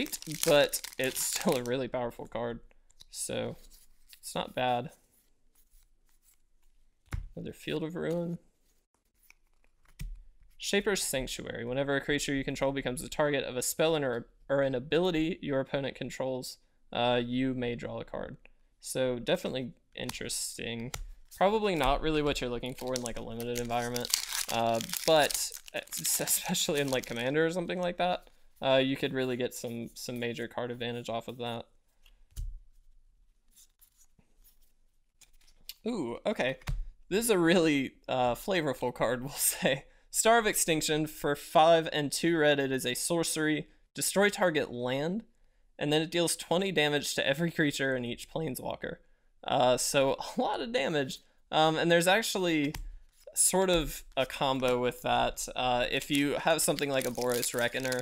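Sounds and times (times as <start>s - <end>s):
cards being shuffled by hand: 0.0s - 1.8s, 20.8s - 28.4s, 56.0s - 58.0s.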